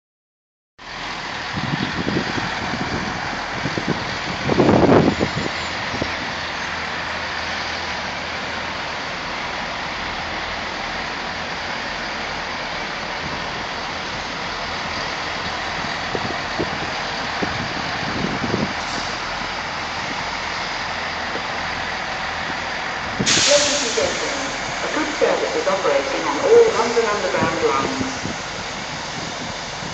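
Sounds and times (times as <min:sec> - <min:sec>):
diesel train engines running: 0:00.8 - 0:29.9.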